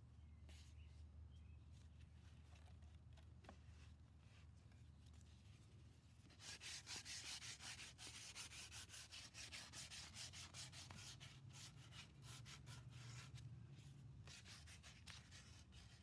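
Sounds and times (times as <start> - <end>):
sandpaper rubbing wood: 6.3 - 13.4, 14.2 - 16.0.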